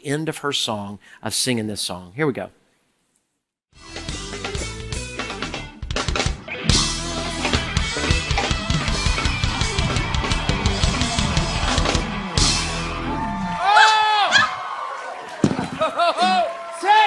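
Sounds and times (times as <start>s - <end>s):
drum kit beat: 3.9s - 13.1s
live pop band playing: 4.0s - 13.2s.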